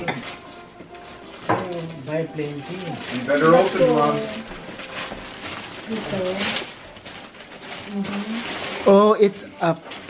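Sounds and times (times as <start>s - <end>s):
wrapping paper rustling and crinkling: 0.0s - 10.0s.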